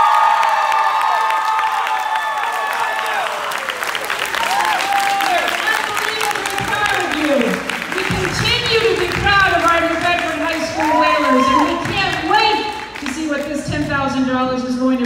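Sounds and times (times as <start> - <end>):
crowd cheering: 0.0 - 13.6
crowd clapping: 0.0 - 14.1.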